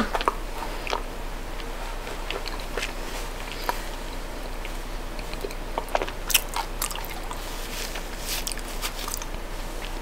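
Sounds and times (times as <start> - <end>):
chewing chocolate: 0.0 - 7.4, 8.4 - 9.4.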